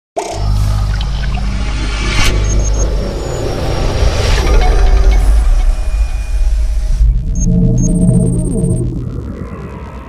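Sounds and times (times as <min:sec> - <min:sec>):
deep heavy rumble: 0:00.4 - 0:10.0
held synthesizer tones: 0:02.0 - 0:10.0.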